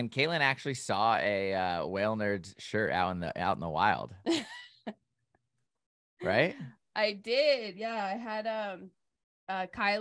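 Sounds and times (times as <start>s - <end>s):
person laughing: 4.3s - 4.9s, 6.2s - 6.6s.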